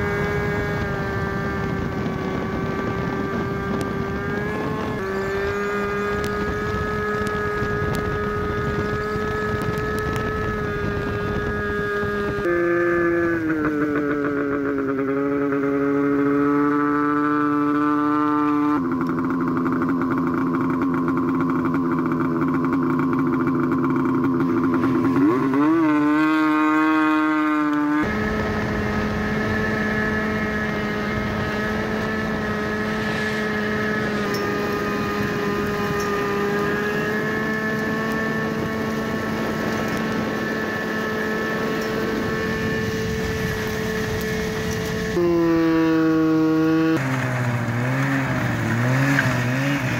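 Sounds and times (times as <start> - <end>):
snowmobile engine running: 0.0 - 49.9.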